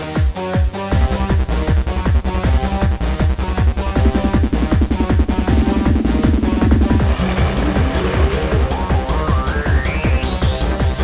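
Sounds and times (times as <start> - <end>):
kick-drum beat: 1.0 - 11.0
synth tone rising in pitch: 3.8 - 11.0
ticking hi-hats: 3.9 - 11.0.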